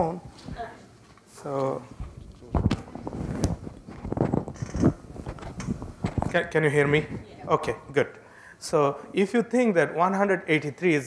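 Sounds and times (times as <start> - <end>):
microphone handling knocks and rubbing: 2.0 - 7.3.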